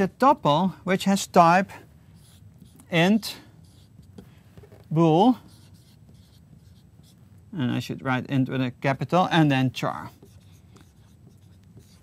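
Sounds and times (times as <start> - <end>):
marker scratching on whiteboard: 2.1 - 7.2, 10.0 - 12.0.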